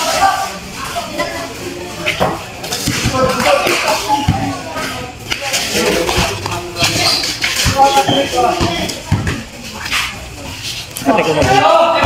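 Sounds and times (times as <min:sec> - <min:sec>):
people talking and calling out: 0:00.0 - 0:12.0
basketball thudding on concrete: 0:07.6 - 0:09.5.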